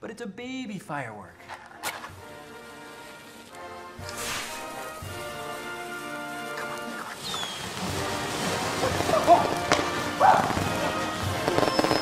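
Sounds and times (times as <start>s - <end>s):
background music: 0.0s - 12.0s
firework fuse hissing: 2.1s - 12.0s.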